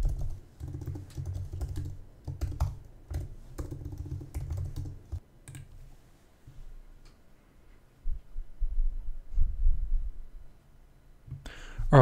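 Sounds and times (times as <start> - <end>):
typing on computer keyboard: 0.0 - 5.7.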